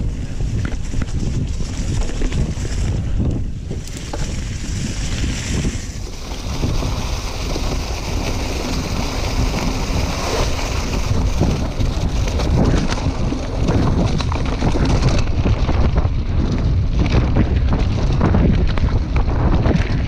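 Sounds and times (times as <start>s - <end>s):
tyres rumbling on dirt trail: 0.0s - 20.0s
wind buffeting microphone: 0.0s - 20.0s
bike rattling and knocking: 0.1s - 20.0s.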